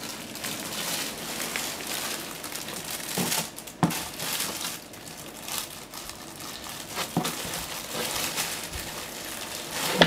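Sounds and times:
steady noisy rustle: 0.0s - 10.0s.

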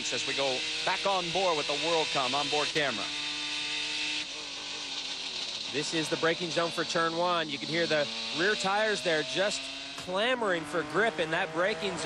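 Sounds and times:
race car engine running: 0.0s - 12.0s.

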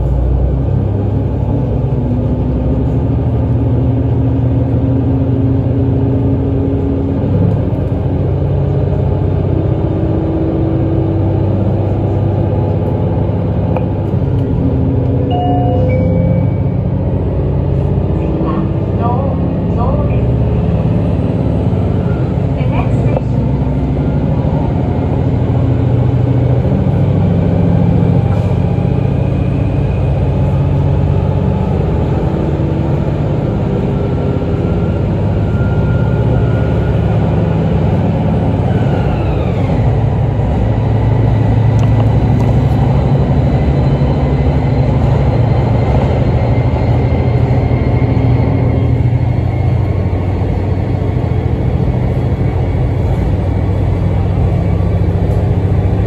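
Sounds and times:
train rumble of engine and wheels: 0.0s - 56.0s.

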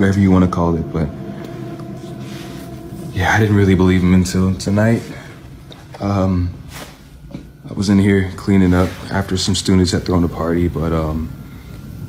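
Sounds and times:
faint hiss: 0.0s - 12.0s
low background hum: 0.0s - 12.0s.

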